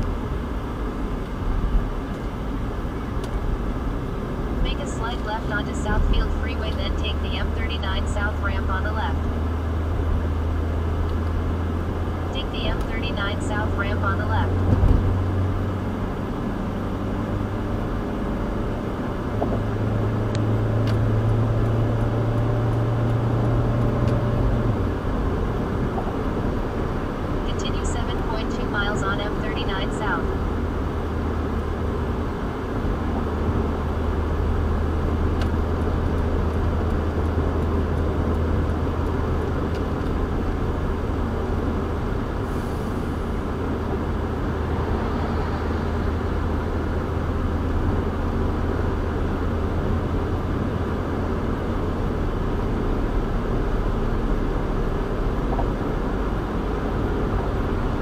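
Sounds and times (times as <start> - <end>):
car engine drone: 0.0 - 58.0.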